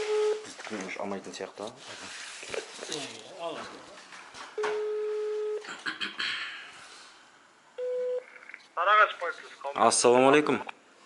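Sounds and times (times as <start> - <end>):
phone call tone: 4.6 - 5.6, 7.8 - 8.3.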